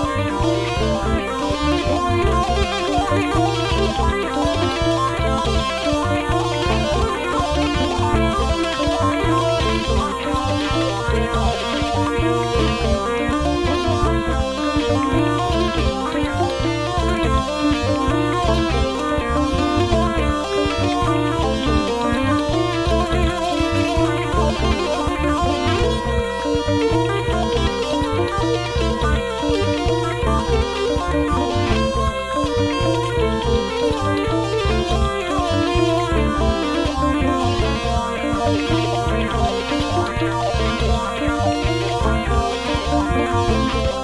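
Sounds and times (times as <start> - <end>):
hurdy-gurdy melody over drones: 0.0 - 44.0
rhythmic pulse: 0.0 - 44.0.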